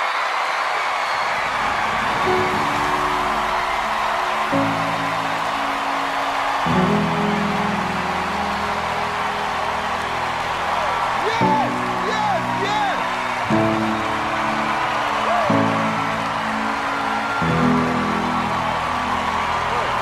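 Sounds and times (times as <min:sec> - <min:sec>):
audience applauding and cheering: 0:00.0 - 0:20.0
sustained music chords: 0:02.3 - 0:20.0.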